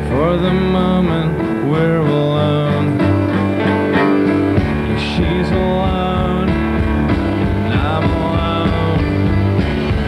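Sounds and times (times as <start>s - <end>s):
drums: 0.0s - 10.0s
grand piano: 0.0s - 10.0s
upright bass: 0.0s - 10.0s.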